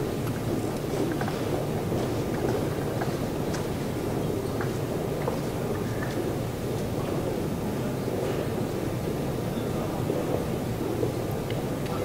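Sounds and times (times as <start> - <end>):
murmur of crowd in hall: 5.4 - 12.0.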